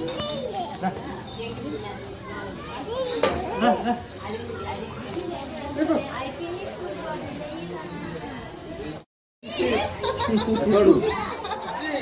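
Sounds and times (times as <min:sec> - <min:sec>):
people talking and chattering: 0:00.0 - 0:12.0.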